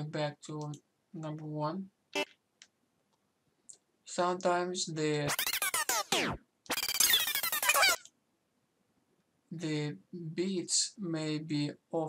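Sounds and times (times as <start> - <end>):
electronic dance track: 5.3 - 8.0.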